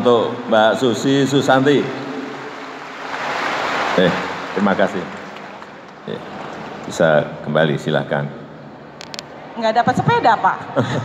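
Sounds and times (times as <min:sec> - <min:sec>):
audience applauding: 0:03.2 - 0:07.0.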